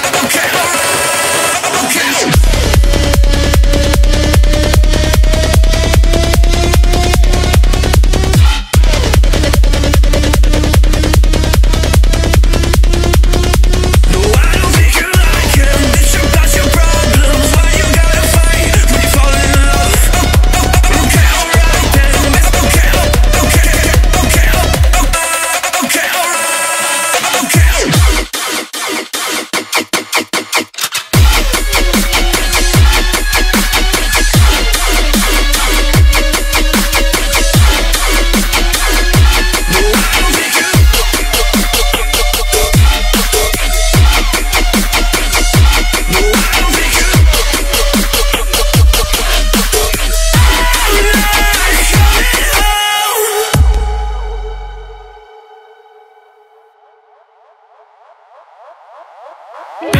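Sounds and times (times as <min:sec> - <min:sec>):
rising synth sweeps: 0:53.4 - 0:59.9.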